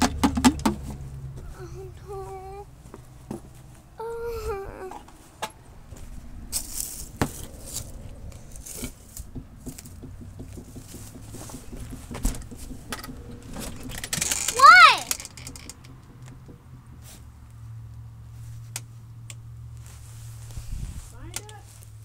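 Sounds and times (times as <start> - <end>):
child's short vocal sound: 4.0 - 5.0, 14.5 - 15.1
rustling and knocks among leaves: 5.9 - 13.6
loud high-pitched cry: 14.5 - 15.1.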